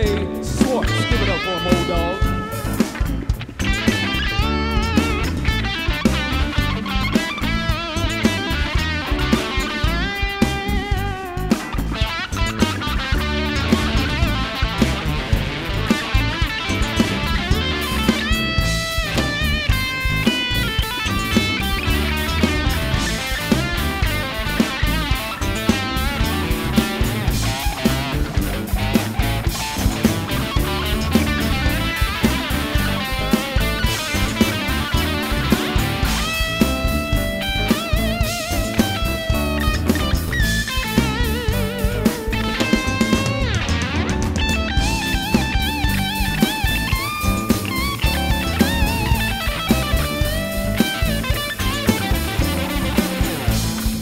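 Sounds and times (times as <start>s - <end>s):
electric guitar solo: 0.0s - 54.0s
funk band drums and bass: 0.0s - 54.0s.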